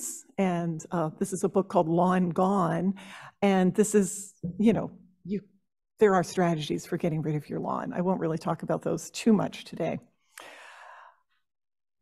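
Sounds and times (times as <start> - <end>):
woman's intake of breath: 10.4 - 11.2.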